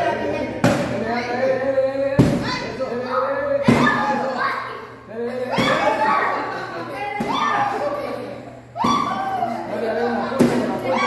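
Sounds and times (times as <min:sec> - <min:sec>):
stick hitting paper pinata: 0:00.6 - 0:01.0, 0:02.2 - 0:02.6, 0:10.3 - 0:10.9.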